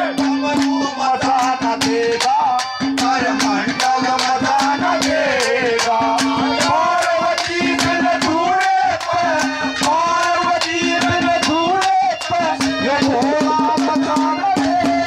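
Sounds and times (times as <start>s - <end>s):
drum steady beat: 0.0s - 15.0s
harmonium: 0.0s - 15.0s.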